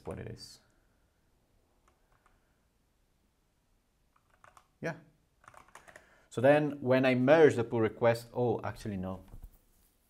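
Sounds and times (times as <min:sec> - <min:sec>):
computer keyboard keystrokes: 0:04.1 - 0:04.7, 0:05.4 - 0:06.1.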